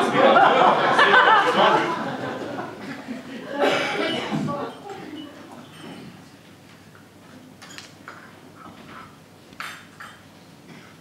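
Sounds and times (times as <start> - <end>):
crockery clink: 5.7 - 6.2.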